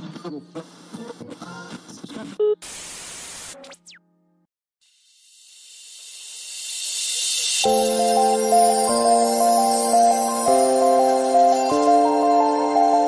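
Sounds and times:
static-like hiss burst: 0.6s - 3.8s
rising whoosh of high hiss: 5.4s - 11.0s
background music: 7.7s - 13.0s.

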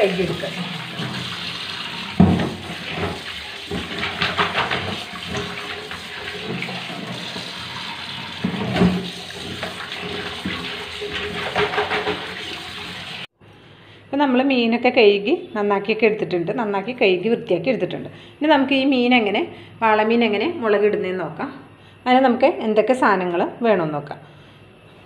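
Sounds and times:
tap water running into steel bowl: 0.0s - 13.3s
water splashing: 0.0s - 13.3s.

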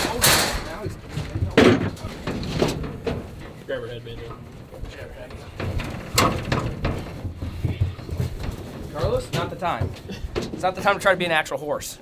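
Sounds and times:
hooves knocking against trailer: 0.0s - 11.6s.

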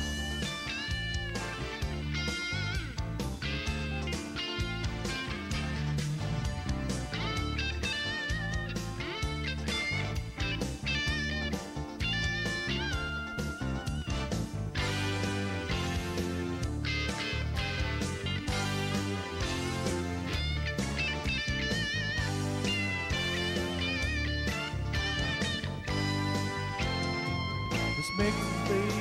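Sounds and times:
bass line: 0.0s - 29.0s
lead guitar solo: 0.0s - 29.0s
steady beat: 0.0s - 29.0s.

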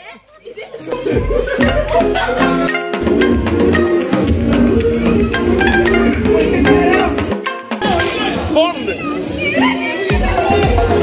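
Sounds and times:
women laughing and shouting: 0.0s - 3.1s, 9.2s - 11.0s
background music: 1.0s - 11.0s.

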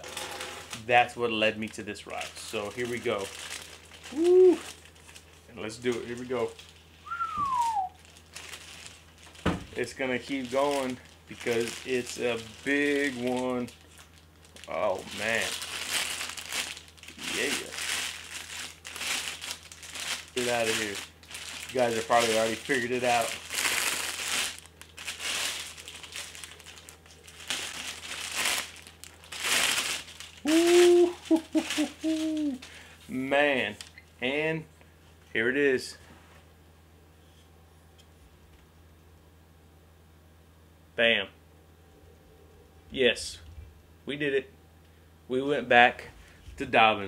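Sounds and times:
plastic sleeve crinkling: 0.0s - 33.0s
falling whistle: 7.0s - 8.0s.

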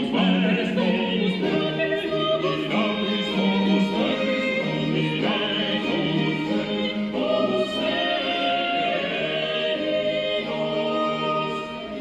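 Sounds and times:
vocal ensemble singing in parts: 0.0s - 12.0s.

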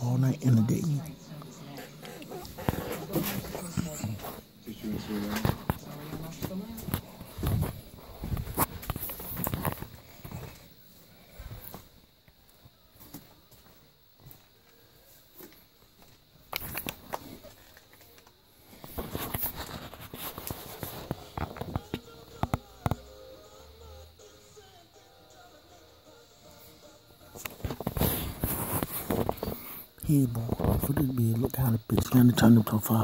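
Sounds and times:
faint background music: 0.0s - 33.0s.

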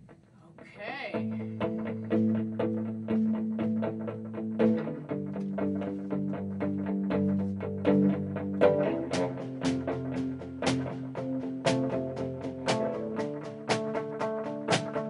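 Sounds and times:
picked electric guitar: 1.1s - 15.0s
sharp drum hits: 10.6s - 11.0s.

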